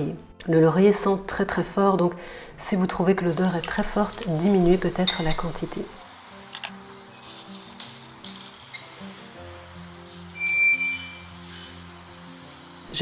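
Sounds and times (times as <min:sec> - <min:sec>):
soft background music: 0:00.0 - 0:13.0.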